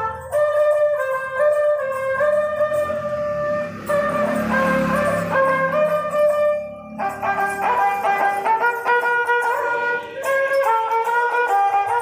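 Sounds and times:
bowed fiddle melody: 0.0s - 12.0s.

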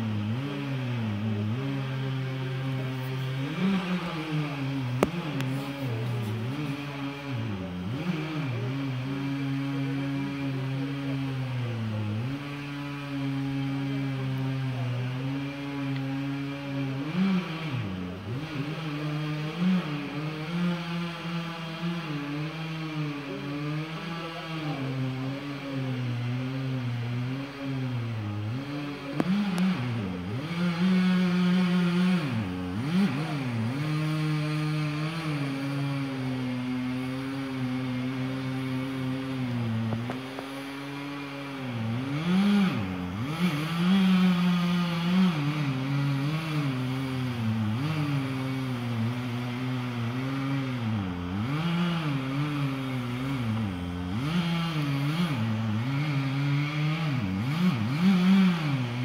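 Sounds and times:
chainsaw running at high revs: 0.0s - 59.0s.

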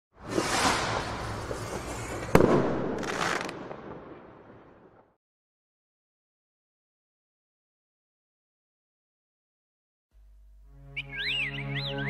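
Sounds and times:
firework rocket rushing noise: 0.2s - 3.8s.

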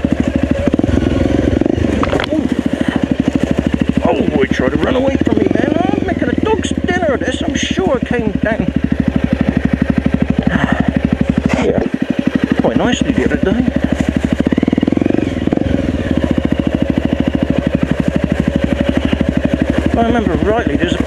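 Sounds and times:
dirt bike engine running: 0.0s - 21.0s.

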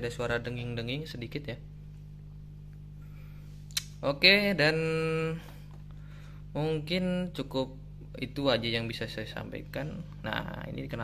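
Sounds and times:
amplifier mains hum: 0.0s - 11.0s.

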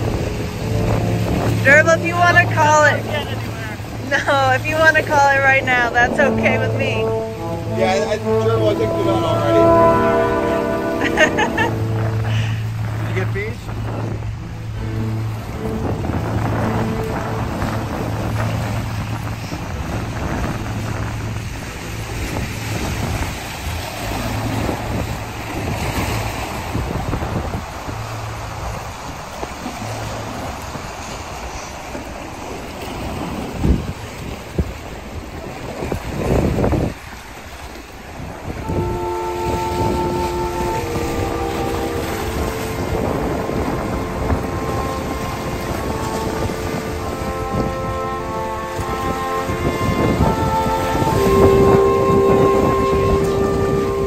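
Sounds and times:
steady held tones: 0.0s - 19.4s, 38.6s - 54.0s
low hum: 0.0s - 33.0s
wind rushing on microphone: 0.0s - 54.0s.

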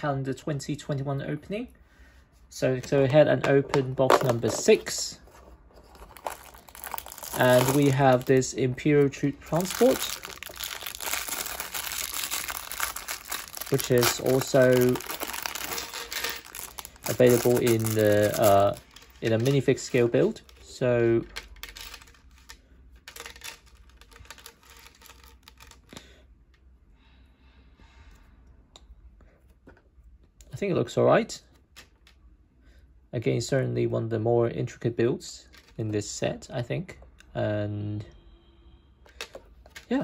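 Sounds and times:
plastic bricks clicking and rattling: 3.4s - 5.0s, 5.9s - 8.5s, 9.5s - 20.6s, 21.2s - 26.0s
cardboard rustling: 3.8s - 20.3s
plastic bag crinkling: 4.1s - 5.0s, 5.8s - 26.0s.

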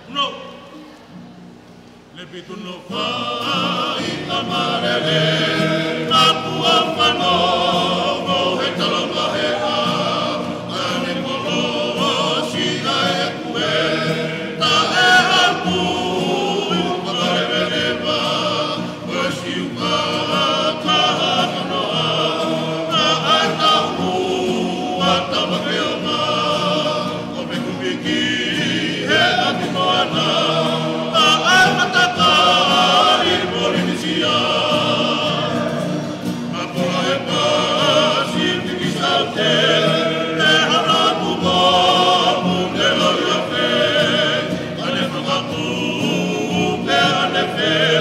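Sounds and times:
choir singing in harmony: 2.3s - 48.0s.

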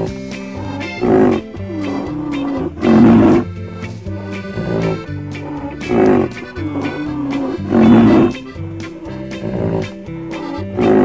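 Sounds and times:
background music: 0.0s - 11.0s
rhinoceros calling: 0.0s - 11.0s.

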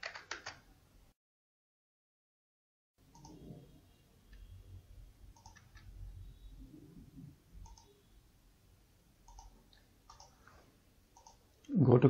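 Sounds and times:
computer mouse clicks: 3.1s - 3.5s, 5.3s - 5.9s, 7.6s - 8.0s, 9.2s - 11.8s.

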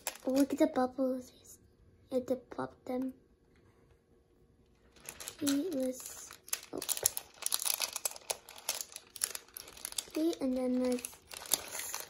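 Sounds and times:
plastic bag crinkling: 0.0s - 0.6s, 4.8s - 12.0s.

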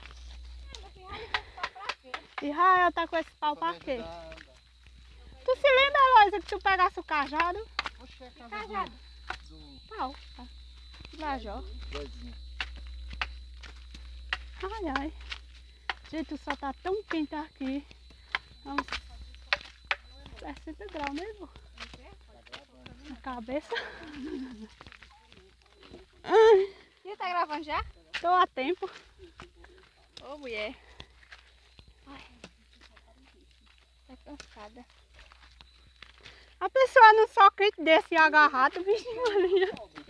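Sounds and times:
footsteps on sandy dirt track: 0.0s - 40.0s.

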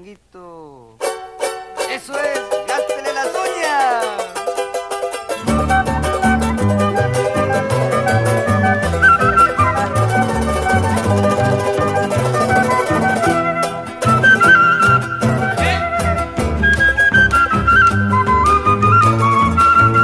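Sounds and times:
strummed charango: 1.0s - 20.0s
flute melody: 2.3s - 20.0s
bass: 5.4s - 20.0s.

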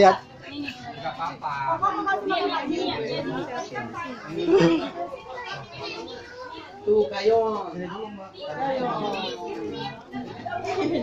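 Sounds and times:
people talking indistinctly: 0.0s - 11.0s
children's voices: 0.2s - 11.0s.

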